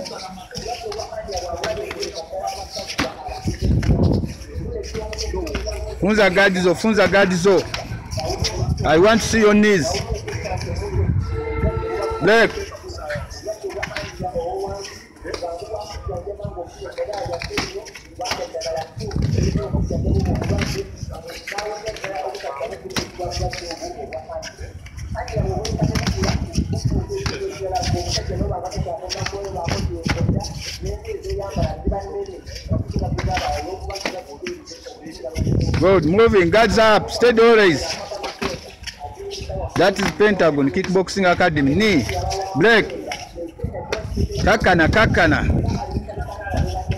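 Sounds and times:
voices talking and calling out: 0.0 - 46.9
man calling out: 11.4 - 12.6.

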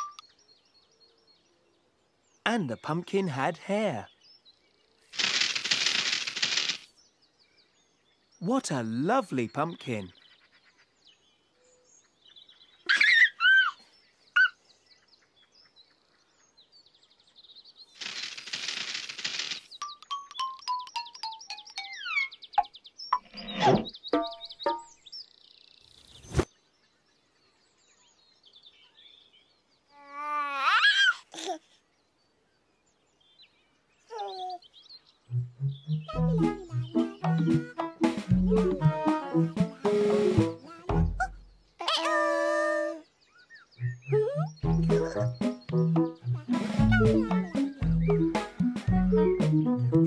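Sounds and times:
cartoon whistling chirps: 43.8 - 45.3, 45.9 - 48.3.

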